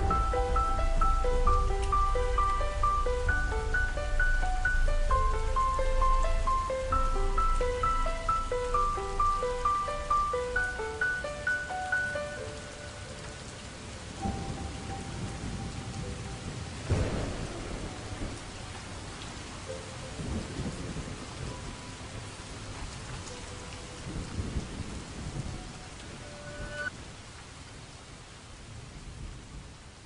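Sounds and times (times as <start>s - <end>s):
rolling thunder: 0.0s - 10.3s, 14.0s - 23.0s, 24.0s - 26.9s
faint held music notes: 0.0s - 18.4s
melody: 0.0s - 18.4s
steady rain: 0.0s - 30.0s
thunder crack: 14.2s - 19.4s.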